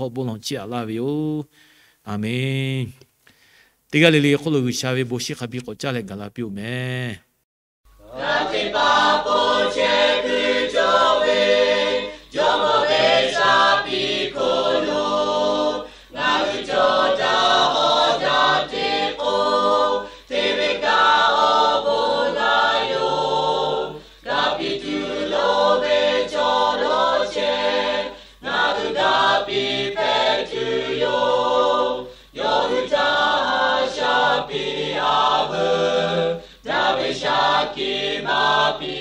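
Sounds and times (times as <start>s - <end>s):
choir singing: 8.0s - 39.0s.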